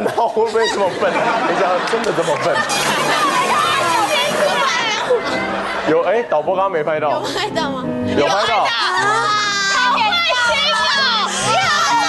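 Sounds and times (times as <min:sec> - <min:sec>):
background music: 0:00.0 - 0:12.0
young women talking and exclaiming: 0:02.5 - 0:05.8, 0:07.1 - 0:12.0.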